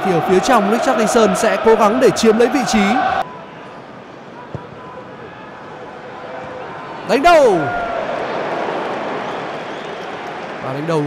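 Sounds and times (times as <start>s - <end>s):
stadium crowd noise: 0.0s - 11.0s.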